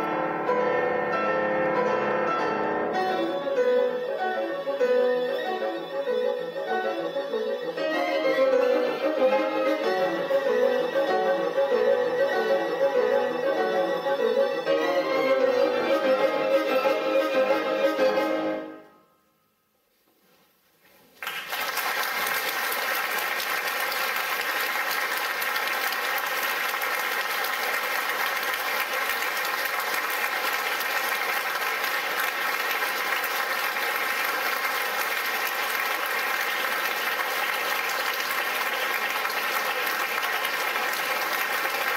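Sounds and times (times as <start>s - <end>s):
audience applauding: 21.2s - 41.9s.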